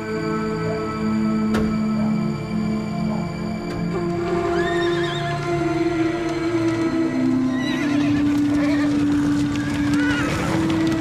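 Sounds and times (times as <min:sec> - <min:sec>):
film score of long held notes: 0:00.0 - 0:11.0
horse whinnying: 0:04.4 - 0:05.8, 0:07.4 - 0:11.0.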